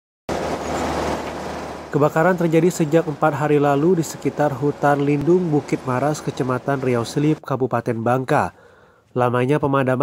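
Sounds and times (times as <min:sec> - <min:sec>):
low engine hum: 0:00.3 - 0:07.4
vehicle road noise: 0:00.3 - 0:07.4.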